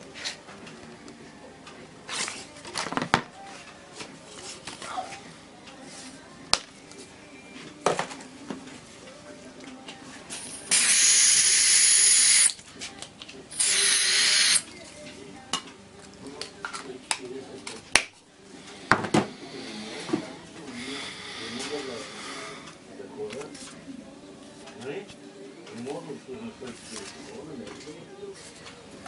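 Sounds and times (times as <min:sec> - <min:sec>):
gas hissing from refill can: 0:10.4 - 0:12.6, 0:13.5 - 0:14.6.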